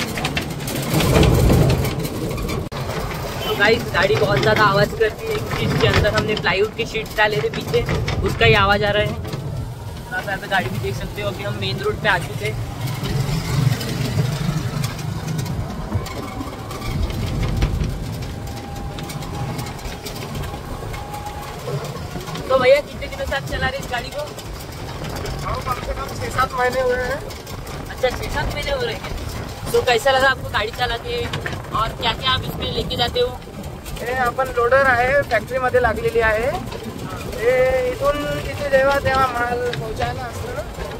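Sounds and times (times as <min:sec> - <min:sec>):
light rattles: 0:00.0 - 0:40.9
wind and road noise rumble: 0:00.0 - 0:40.9.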